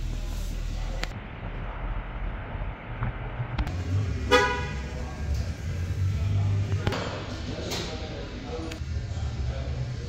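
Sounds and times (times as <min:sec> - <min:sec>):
low rumble: 0:00.0 - 0:04.3
vehicle horn toot: 0:04.2 - 0:04.9.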